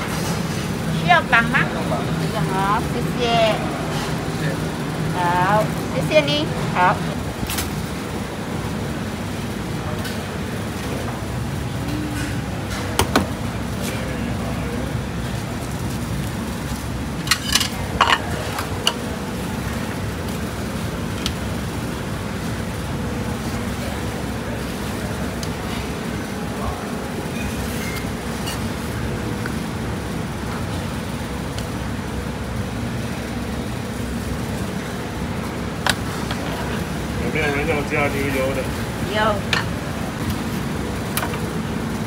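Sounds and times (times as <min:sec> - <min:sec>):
kitchen background rumble: 0:00.0 - 0:42.0
kitchen work clicks and knocks: 0:12.2 - 0:13.4, 0:17.3 - 0:19.0.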